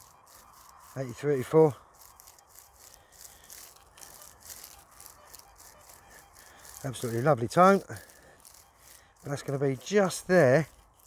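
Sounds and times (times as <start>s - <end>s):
straw stubble rustling: 0.0s - 11.0s.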